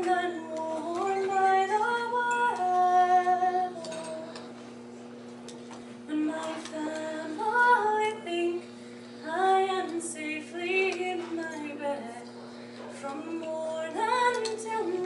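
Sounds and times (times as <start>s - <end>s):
woman singing unaccompanied: 0.0s - 4.5s, 6.1s - 12.3s, 13.0s - 15.0s.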